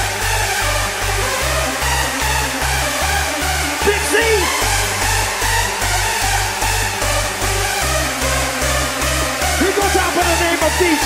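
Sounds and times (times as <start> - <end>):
loud hardstyle dance music: 0.0 - 11.0.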